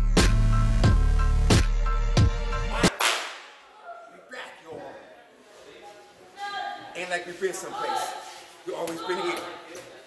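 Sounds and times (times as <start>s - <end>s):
music with heavy bass and beat: 0.0s - 2.9s.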